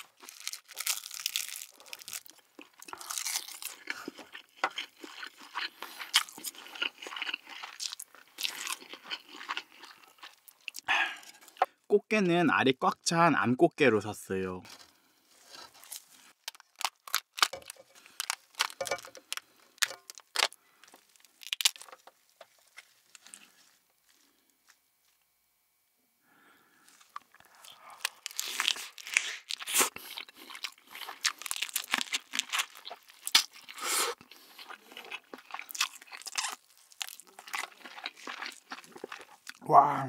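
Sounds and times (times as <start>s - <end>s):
biting and chewing: 0.0s - 11.7s, 15.4s - 24.3s, 26.9s - 39.6s
crab shell cracking: 15.9s - 22.5s, 27.1s - 29.9s.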